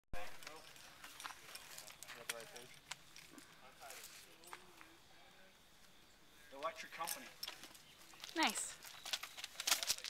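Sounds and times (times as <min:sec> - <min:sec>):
climbing gear clicks and taps: 0:06.6 - 0:10.0.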